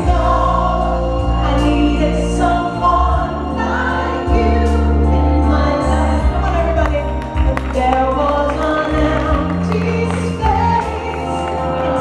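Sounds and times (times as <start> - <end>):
musical accompaniment with bass line: 0.0 - 12.0
woman singing a slow ballad: 0.0 - 12.0.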